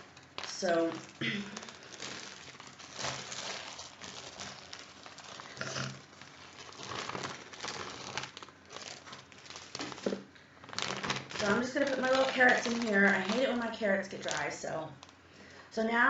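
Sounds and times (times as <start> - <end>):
plastic bags crinkling: 0.0 - 15.6.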